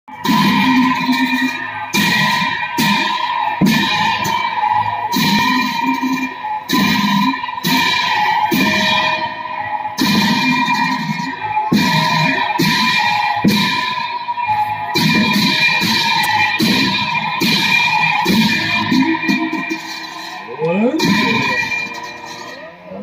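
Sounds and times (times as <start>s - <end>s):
drum beats: 0.1s - 22.8s
cymbals ringing: 0.1s - 23.0s.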